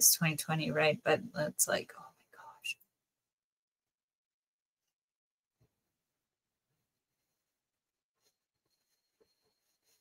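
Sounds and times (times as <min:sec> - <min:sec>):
woman whispering: 0:00.2 - 0:02.8.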